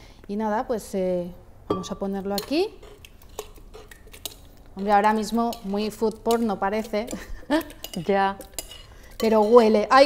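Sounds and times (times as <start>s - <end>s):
woman speaking: 0.3s - 2.8s, 4.8s - 8.5s, 9.2s - 10.0s.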